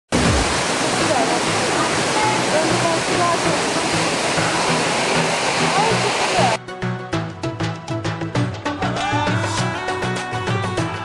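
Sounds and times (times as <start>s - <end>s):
waterfall rushing: 0.1s - 6.6s.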